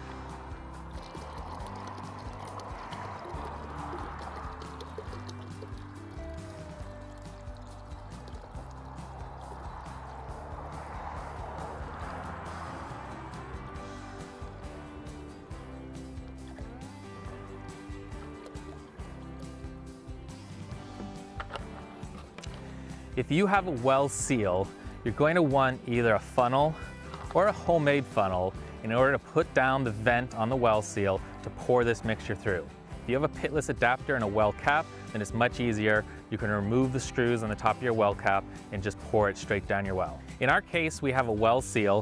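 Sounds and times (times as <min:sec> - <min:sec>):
liquid pouring into bucket: 0:00.0 - 0:12.6, 0:17.5 - 0:19.8
background music: 0:00.0 - 0:42.0.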